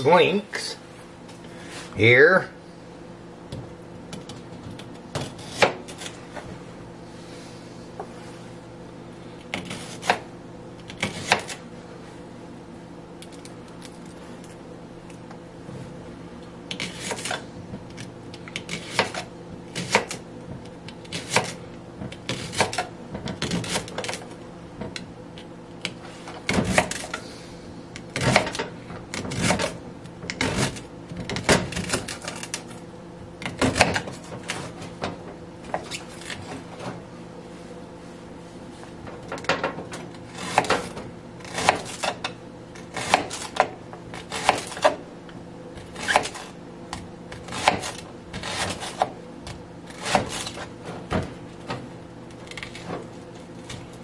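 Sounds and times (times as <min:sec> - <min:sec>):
steady low hum: 0:00.0 - 0:54.0
knife cutting on plastic board: 0:40.3 - 0:42.2, 0:42.8 - 0:45.0.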